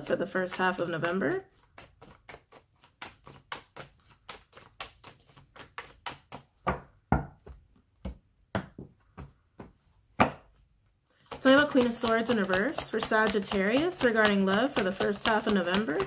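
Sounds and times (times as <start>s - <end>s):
cards being shuffled: 0.2s - 6.7s, 10.5s - 16.0s
cards tapping: 0.2s - 10.5s, 11.2s - 16.0s.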